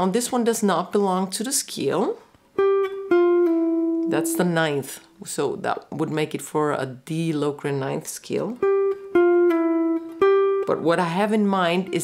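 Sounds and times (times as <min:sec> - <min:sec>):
electric guitar picked notes: 0:02.6 - 0:05.3, 0:08.6 - 0:12.0.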